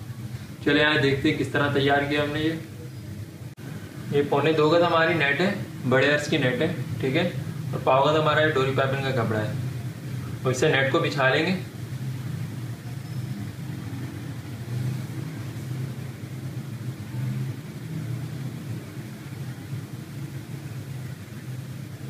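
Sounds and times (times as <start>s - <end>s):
low motor-like hum: 0.0s - 22.0s.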